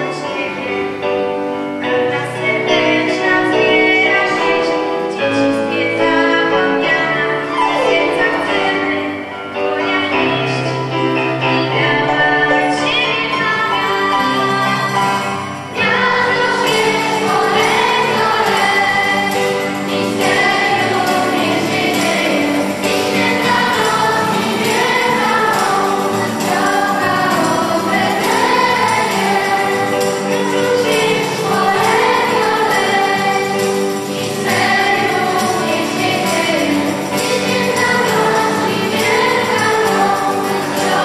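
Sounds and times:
electronic keyboard: 0.0s - 41.0s
choir singing: 2.1s - 41.0s.

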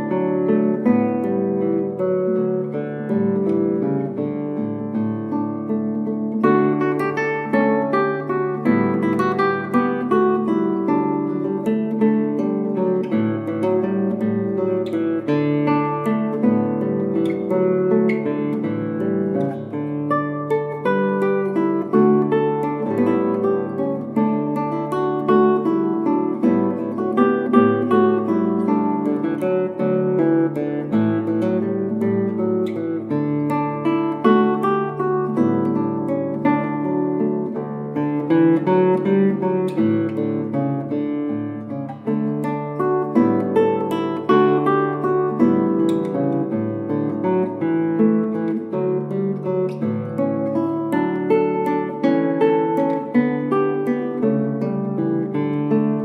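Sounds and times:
fingerstyle acoustic guitar: 0.0s - 56.0s.

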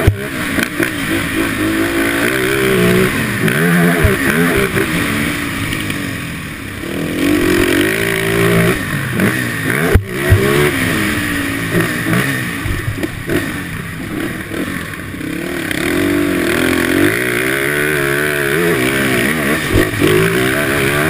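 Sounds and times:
atv engine revving: 0.0s - 21.0s.

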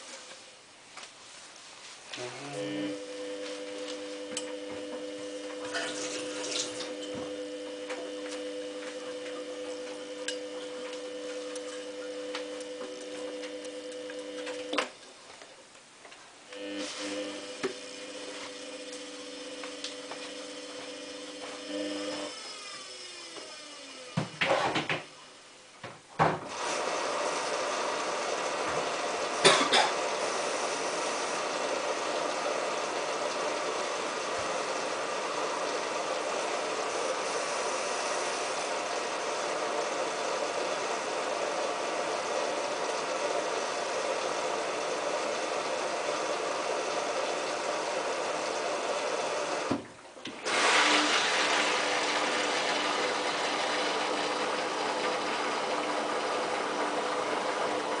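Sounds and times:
washing machine drum churning: 4.3s - 14.8s, 26.3s - 58.0s.

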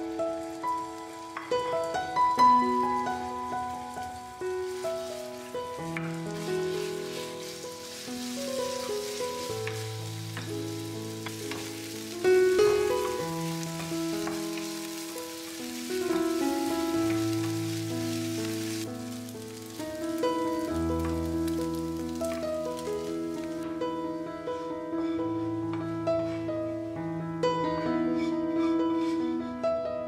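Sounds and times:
chicken sizzling in frying pan: 0.0s - 23.7s.

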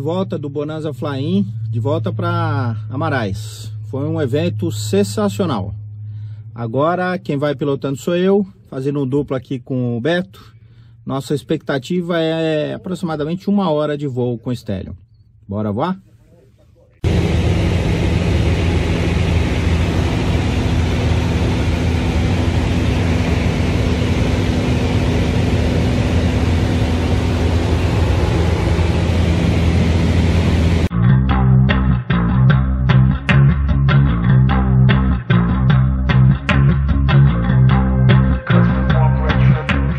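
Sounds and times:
rhythmic guitar and bass music: 0.0s - 8.0s, 17.0s - 39.9s
light aircraft engine droning: 16.0s - 30.9s.

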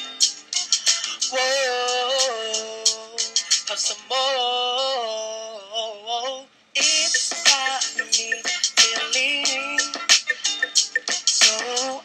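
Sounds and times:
backing track music: 0.0s - 4.1s, 6.8s - 12.0s
person singing: 0.6s - 12.0s.

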